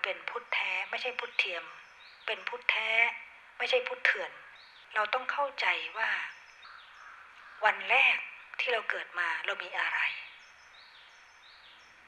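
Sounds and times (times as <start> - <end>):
woman speaking: 0.0 - 6.3, 7.6 - 10.3
faint background hiss: 0.0 - 12.0.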